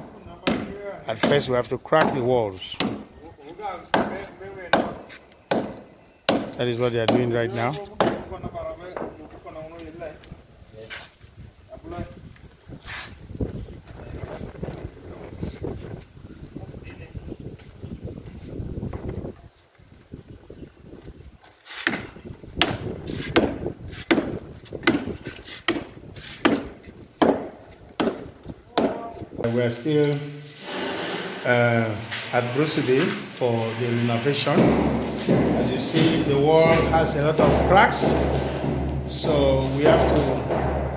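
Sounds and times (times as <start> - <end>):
hammer and chisel knocking wall: 0.4 - 3.1, 3.9 - 8.4, 21.8 - 29.2, 34.3 - 40.9.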